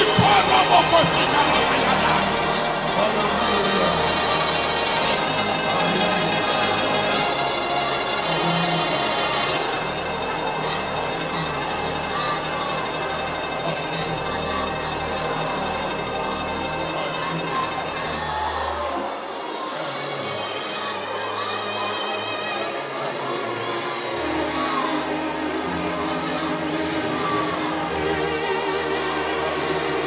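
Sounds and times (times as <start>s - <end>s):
bass notes: 0.0s - 16.9s
keyboard chords: 0.0s - 19.7s
congregation singing and praying: 0.0s - 30.0s.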